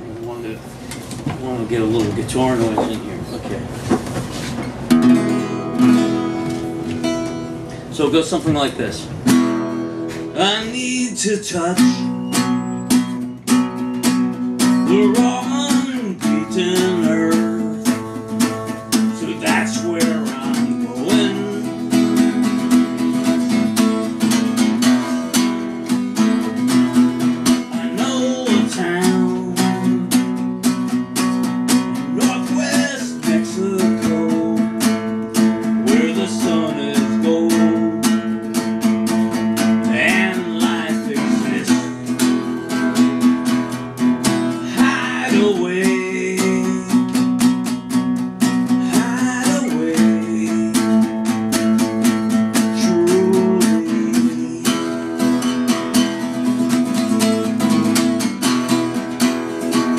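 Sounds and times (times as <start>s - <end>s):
acoustic guitar strumming: 0.0s - 59.9s
man singing: 10.3s - 12.2s, 14.8s - 23.8s, 27.5s - 30.4s, 32.0s - 38.4s, 39.8s - 42.2s, 44.5s - 47.4s, 48.6s - 51.8s, 52.4s - 56.3s.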